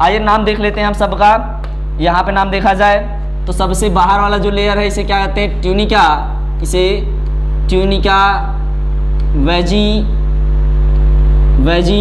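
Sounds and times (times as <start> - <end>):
man speaking: 0.0 - 8.7, 9.3 - 10.2, 11.6 - 12.0
loud low hum: 0.0 - 12.0.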